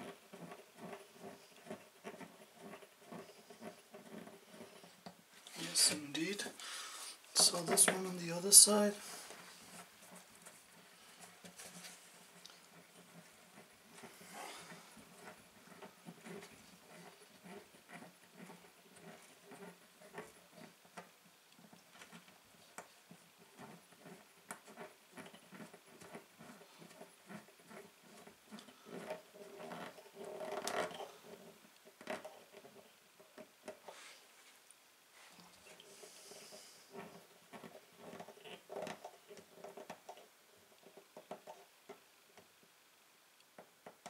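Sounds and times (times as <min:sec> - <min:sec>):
rustling handling: 0:00.4 - 0:20.7.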